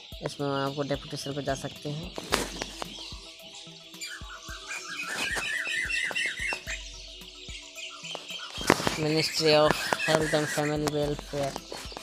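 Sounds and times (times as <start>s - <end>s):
background music with held tones: 0.0s - 12.0s
bird-like falling chirps: 4.0s - 10.7s.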